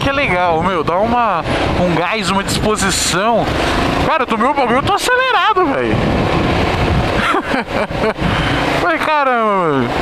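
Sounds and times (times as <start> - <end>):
wind on microphone: 0.0 - 8.8
motorcycle engine running: 0.0 - 10.0.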